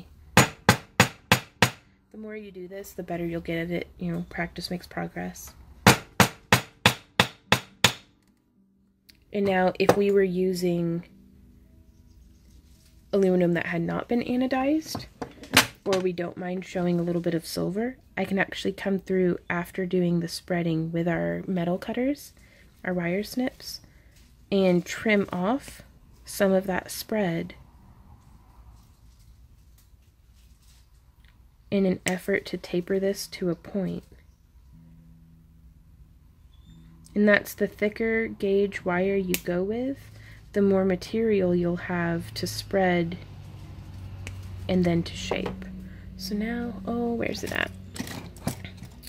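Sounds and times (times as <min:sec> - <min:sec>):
hammer striking wire on anvil: 0:00.4 - 0:01.9, 0:05.8 - 0:08.1.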